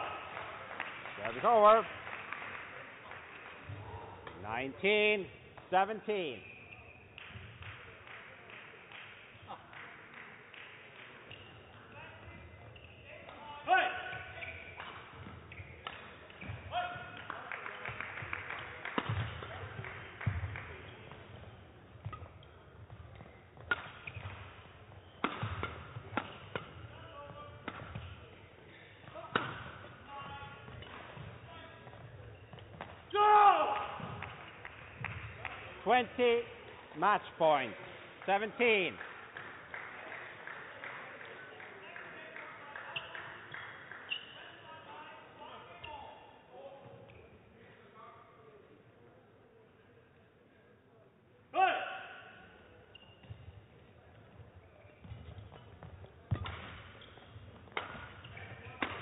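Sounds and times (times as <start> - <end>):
shoes squeaking on court floor: 3.6 - 7.6, 11.2 - 17.2, 18.9 - 35.4, 42.8 - 47.5, 52.4 - 59.0
rackets striking shuttlecock: 14.2 - 16.7, 18.9 - 19.6, 22.0 - 28.2, 29.0 - 29.9, 30.6 - 33.2, 55.0 - 59.0
player shouting: 33.1 - 34.0, 51.6 - 52.1.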